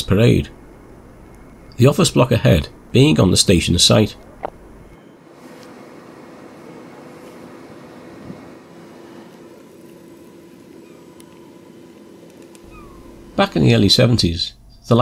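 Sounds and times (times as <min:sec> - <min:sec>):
steady low hum: 0:00.0 - 0:15.0
short high calls: 0:10.6 - 0:11.9, 0:12.6 - 0:13.4.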